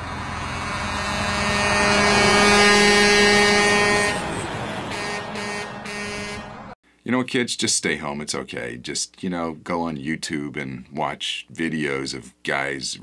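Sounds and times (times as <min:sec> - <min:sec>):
truck horn blast: 0:00.0 - 0:06.8
truck passing on highway: 0:00.0 - 0:06.8.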